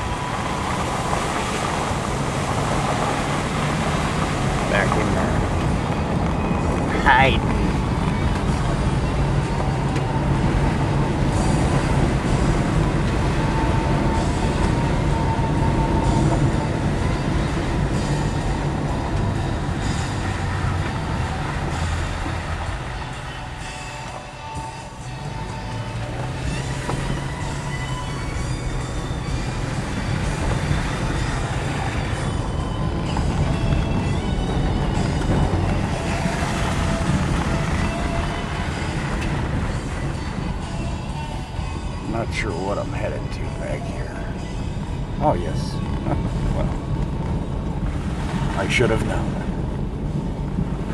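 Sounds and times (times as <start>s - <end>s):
car engine: 0.0s - 50.9s
tyres on wet road: 0.0s - 50.9s.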